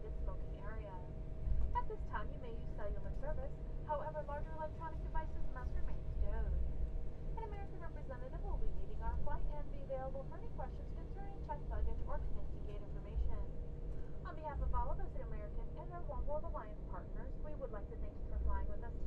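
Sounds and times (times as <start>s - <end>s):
passengers talking: 0.0s - 1.1s, 1.8s - 6.7s, 7.4s - 19.0s
aircraft low rumble: 0.0s - 19.0s
thin constant whine: 0.0s - 19.0s.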